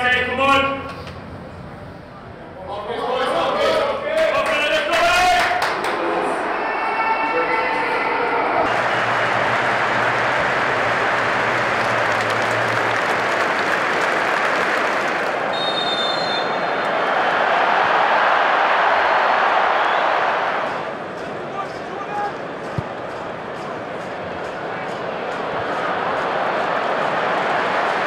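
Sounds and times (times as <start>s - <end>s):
stadium crowd roaring: 2.6s - 28.0s.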